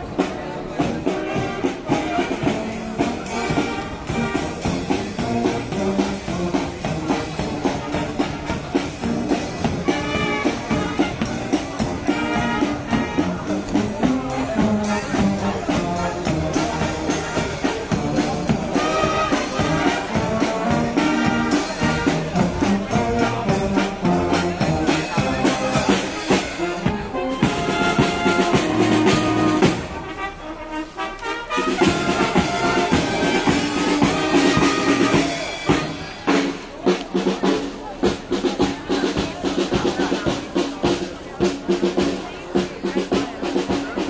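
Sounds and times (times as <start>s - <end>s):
brass band music: 0.0s - 44.0s
drums: 0.0s - 44.0s.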